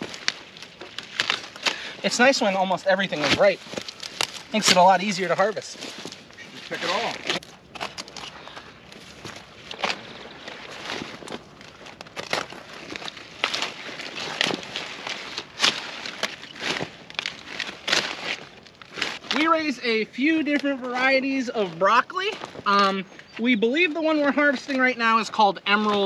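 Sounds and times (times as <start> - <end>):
footsteps in crop row: 0.0 - 26.0
plants rustling: 0.0 - 26.0.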